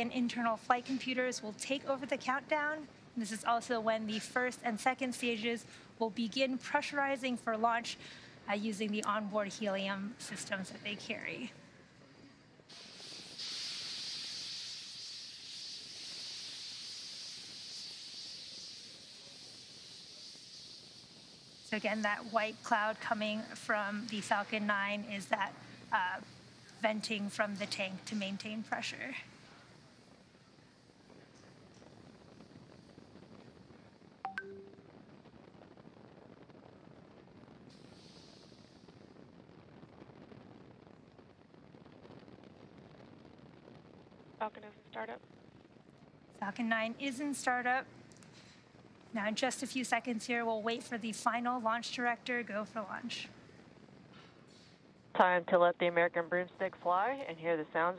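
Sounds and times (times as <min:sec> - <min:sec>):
rocket venting gas hiss: 0:00.0 - 0:44.6, 0:45.2 - 0:55.2
electronic beep: 0:34.3 - 0:34.8.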